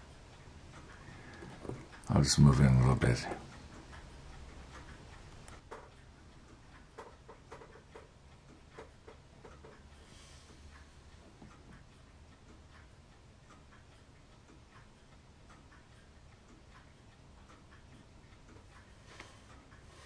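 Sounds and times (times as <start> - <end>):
low room hum: 0.0 - 20.0
faint light ticks: 0.1 - 20.0.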